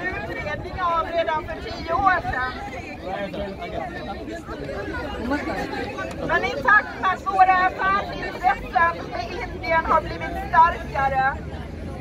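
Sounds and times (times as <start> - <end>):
crowd chatter: 0.0 - 12.0
low street background: 0.0 - 12.0.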